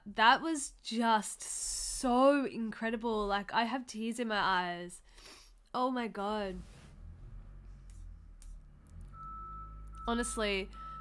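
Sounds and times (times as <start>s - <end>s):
reversing alarm beep: 8.9s - 11.0s.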